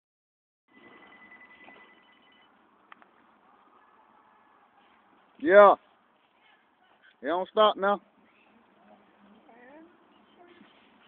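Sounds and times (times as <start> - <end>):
faint steady high tone: 0.7 - 2.8.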